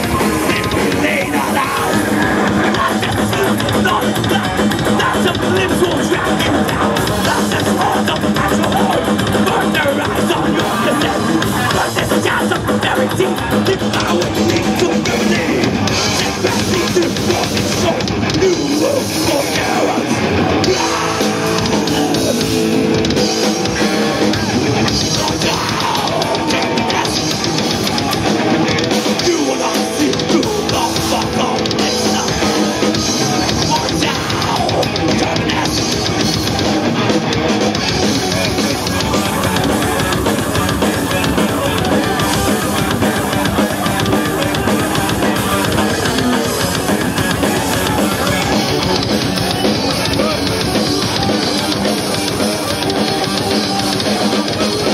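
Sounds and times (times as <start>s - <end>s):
drum kit: 0.0s - 54.9s
electric guitar: 0.0s - 54.9s.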